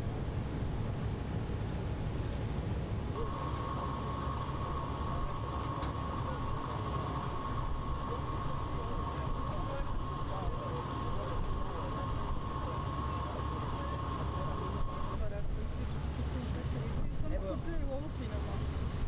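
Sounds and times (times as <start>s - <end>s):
boat engine droning: 0.0s - 19.0s
engine whine: 0.0s - 19.0s.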